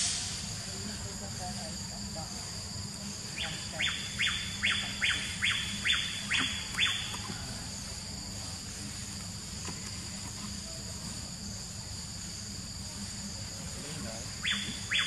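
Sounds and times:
high-pitched insect chorus: 0.0s - 15.0s.

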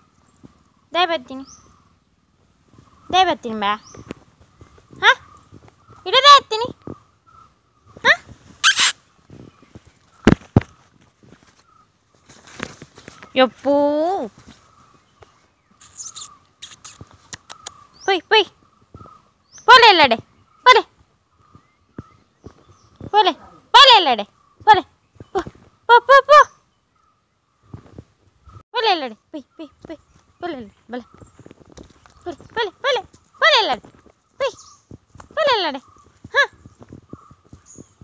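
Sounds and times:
woman calling a puppy: 0.9s - 1.5s, 3.1s - 3.8s, 5.0s - 5.2s, 6.0s - 6.8s, 8.0s - 8.9s, 18.0s - 18.6s, 19.7s - 20.9s, 23.1s - 26.6s, 28.7s - 31.1s, 32.2s - 34.7s, 35.3s - 36.6s
faint scuffling: 8.0s - 15.5s
puppy yipping: 8.6s - 9.0s.

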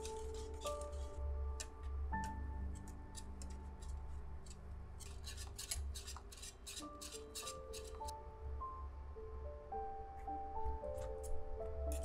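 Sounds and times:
whisk scraping in saucepan: 5.0s - 8.1s.

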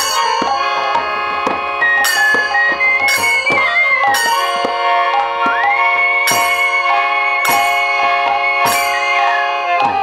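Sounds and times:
flute melody: 0.0s - 10.0s
hand drums in steady rhythm: 0.0s - 10.0s
harmonium chords: 0.0s - 10.0s.

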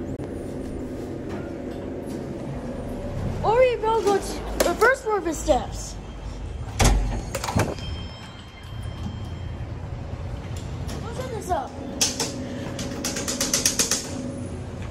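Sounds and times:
elevator hum: 0.0s - 14.9s.

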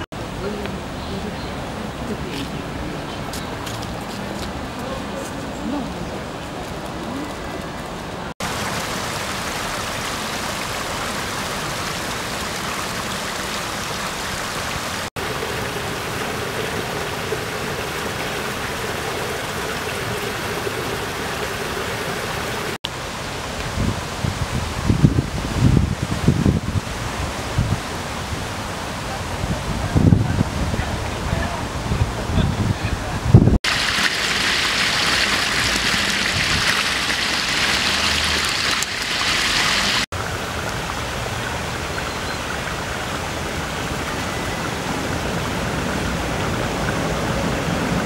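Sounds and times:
water rushing over stone wall: 0.0s - 48.0s.

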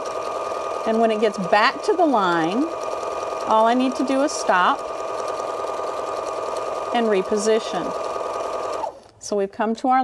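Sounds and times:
sewing machine running: 0.0s - 9.0s.

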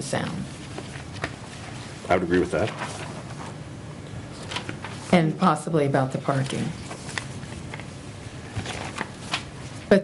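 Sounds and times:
paper rustling: 0.6s - 3.6s, 4.3s - 5.2s, 6.3s - 7.9s, 8.5s - 9.9s
paper crackles: 2.4s - 3.6s, 8.5s - 9.8s.

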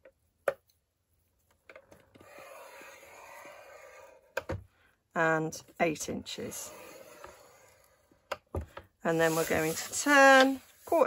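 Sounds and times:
scoring tool scraping paper: 2.2s - 4.4s, 6.3s - 8.0s, 9.1s - 11.0s.

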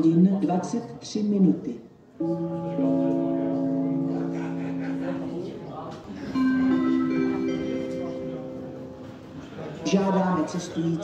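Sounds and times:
public address chime tones: 6.2s - 11.0s.

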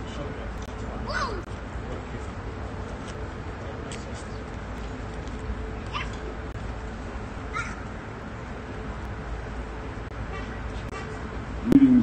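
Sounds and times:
low rumble and hiss: 0.0s - 12.0s
short high animal calls: 7.5s - 7.8s.

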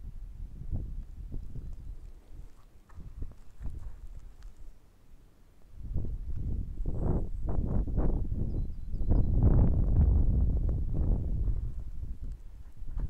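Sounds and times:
wind buffeting microphone: 0.0s - 4.8s, 5.7s - 13.0s.

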